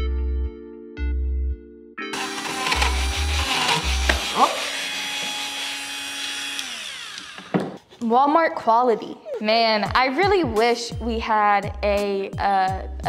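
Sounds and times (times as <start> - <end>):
rotary tool sanding wood: 2.2 - 7.6.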